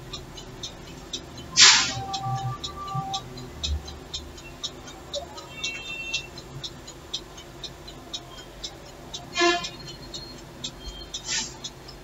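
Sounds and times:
loud horn honk: 1.6s - 3.2s, 9.4s - 9.8s.

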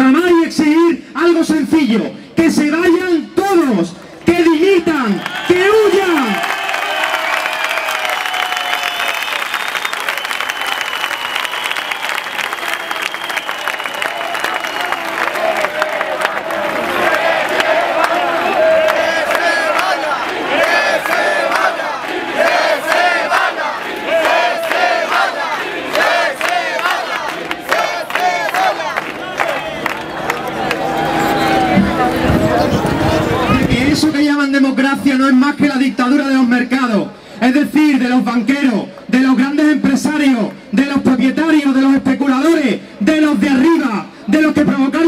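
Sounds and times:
crowd shouting and cheering: 4.4s - 34.6s.

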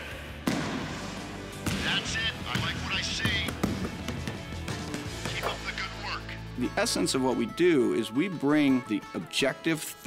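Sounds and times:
background music: 0.0s - 10.0s
basketball bouncing on hardwood: 1.6s - 5.4s.

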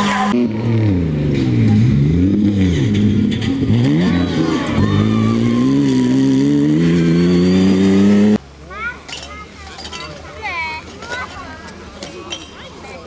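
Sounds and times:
rally car engine accelerating: 0.0s - 8.4s.

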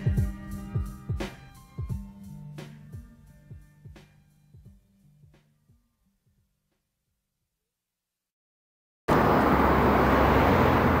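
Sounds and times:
steady outdoor rumble: 9.1s - 11.0s.

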